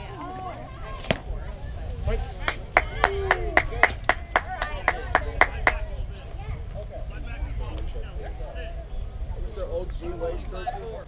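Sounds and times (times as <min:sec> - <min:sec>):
people clapping in rhythm: 0:02.4 - 0:05.8.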